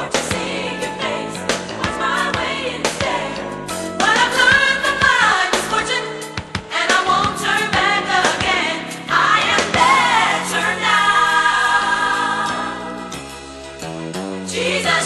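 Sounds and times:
gospel choir singing: 0.0s - 13.4s, 14.5s - 15.0s.

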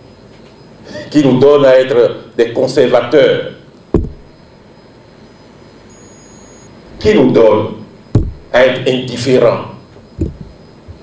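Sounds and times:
faint room background noise: 0.0s - 11.0s
thin high steady tone: 4.0s - 8.9s.

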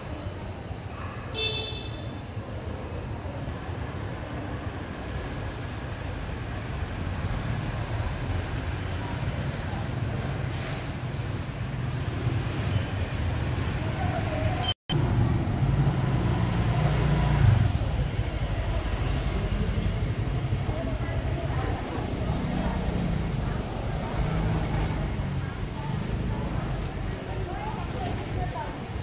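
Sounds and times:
motorbike and scooter traffic: 0.0s - 29.0s
people's voices: 13.6s - 15.6s, 17.4s - 29.0s.

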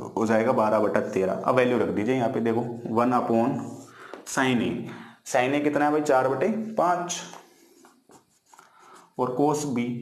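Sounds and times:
person speaking: 0.0s - 10.0s
marker pen writing on whiteboard: 7.1s - 9.7s.

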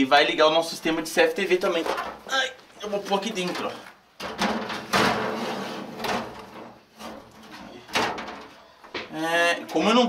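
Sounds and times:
metal scraping on metal shelf: 3.4s - 8.6s
metal knocks: 3.5s - 9.1s.

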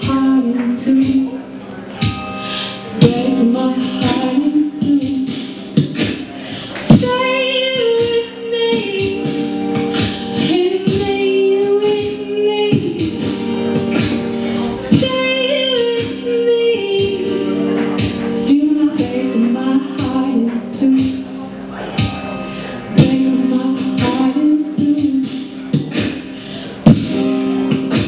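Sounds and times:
looped backing music: 0.0s - 28.0s
woman singing into microphone: 0.0s - 28.0s.

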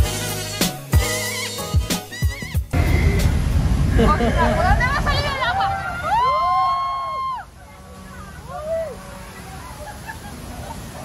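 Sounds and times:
heavy low rumble: 2.7s - 5.5s
voices calling out excitedly: 4.2s - 11.0s.

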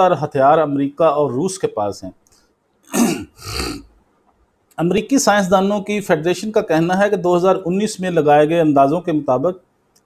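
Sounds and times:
man coughing: 2.9s - 3.9s.

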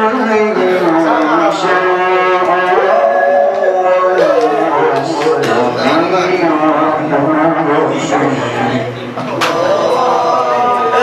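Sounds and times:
man reciting melodically: 0.0s - 9.0s.

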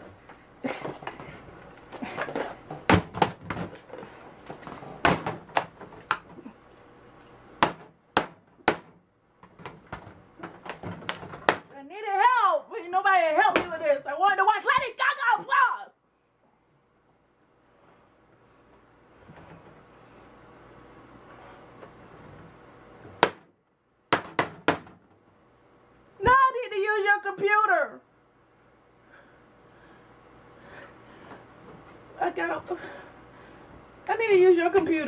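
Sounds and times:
hammer striking laptop: 7.6s - 9.0s, 23.2s - 23.5s, 24.1s - 25.0s.

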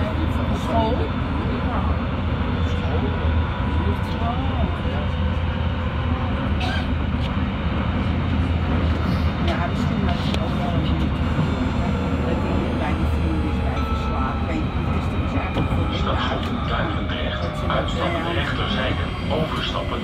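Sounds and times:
metro train rumbling on rails: 0.0s - 20.0s.

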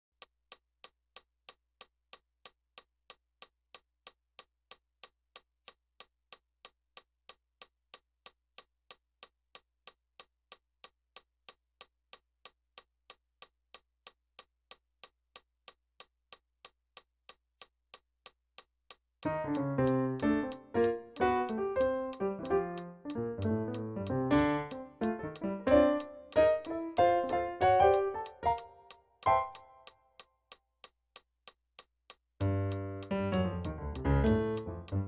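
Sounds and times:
metronome clicking: 19.2s - 35.0s.

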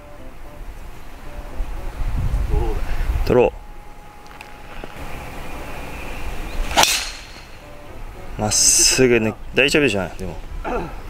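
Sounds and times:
golf club striking ball: 5.9s - 7.8s.

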